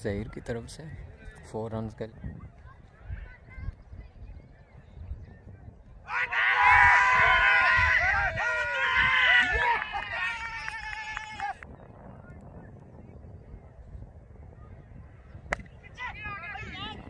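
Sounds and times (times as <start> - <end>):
loud voices calling out: 6.0 - 11.6.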